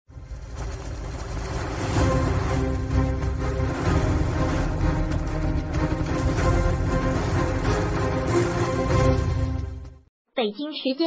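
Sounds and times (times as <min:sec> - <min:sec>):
low noisy rumble: 0:00.1 - 0:08.3
intro music: 0:00.6 - 0:10.1.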